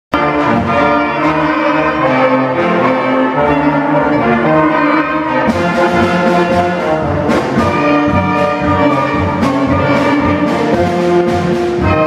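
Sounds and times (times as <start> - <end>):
concert band playing a march: 0.1 - 12.0.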